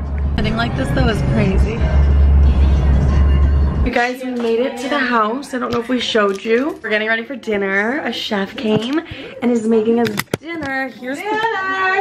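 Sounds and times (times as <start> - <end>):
car road rumble: 0.0 - 3.9.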